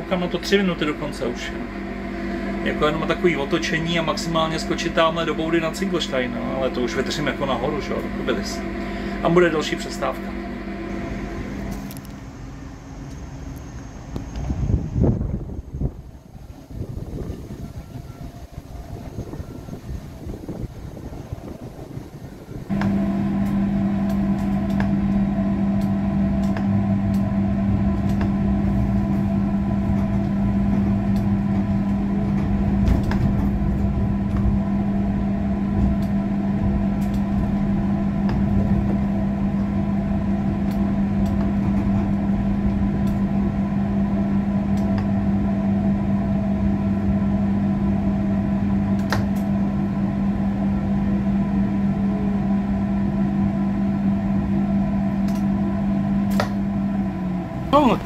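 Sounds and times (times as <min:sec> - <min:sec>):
tram electrical hum: 0:00.0 - 0:58.0.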